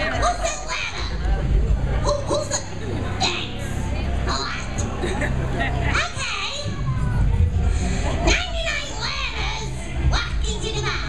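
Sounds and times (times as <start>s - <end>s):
high-pitched voices calling out: 0.0s - 1.3s, 2.0s - 5.0s, 5.8s - 7.5s, 8.1s - 11.0s
crowd noise: 0.0s - 11.0s.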